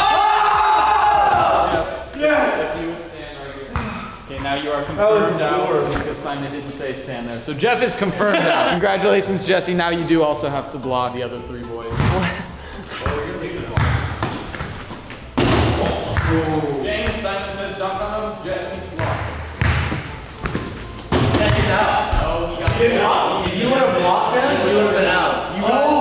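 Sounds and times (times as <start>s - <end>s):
young men shouting: 0.0s - 2.0s
young men laughing: 8.0s - 9.4s, 12.0s - 13.6s.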